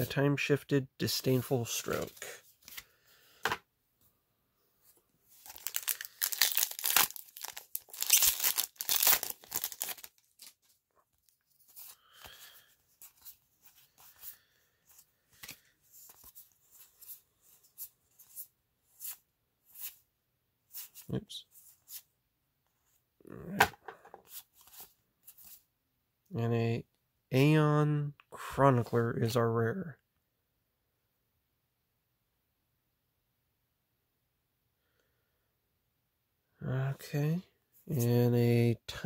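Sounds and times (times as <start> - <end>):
cards sliding with soft flicks: 1.8 - 3.0, 11.4 - 20.0, 20.7 - 22.1, 24.2 - 25.6
wrapper tearing and crinkling: 5.4 - 10.6.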